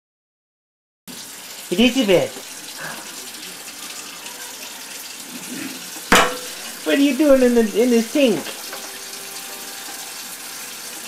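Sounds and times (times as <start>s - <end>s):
water running from spray hose: 1.1s - 11.0s.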